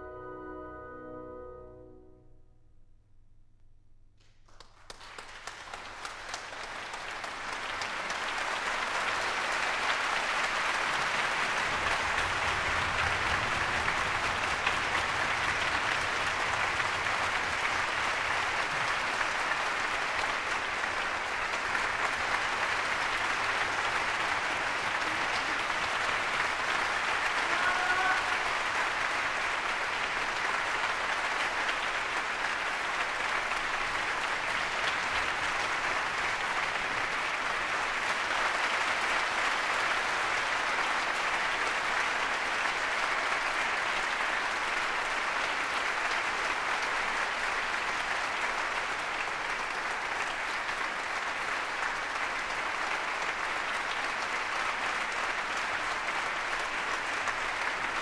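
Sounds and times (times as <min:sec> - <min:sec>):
audience applauding: 0:04.2 - 0:58.0.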